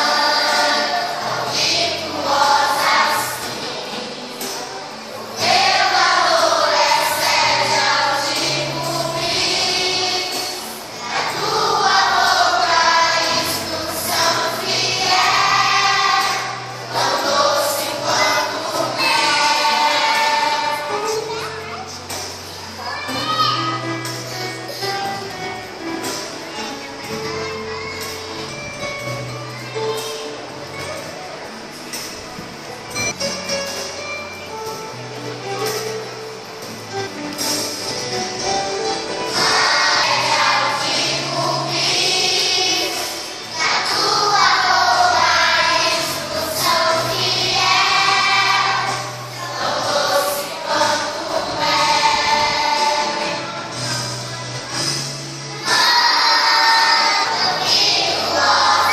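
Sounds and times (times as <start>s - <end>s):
children singing: 0.0s - 29.2s, 37.8s - 58.9s
children chattering: 0.0s - 33.0s, 37.8s - 58.9s.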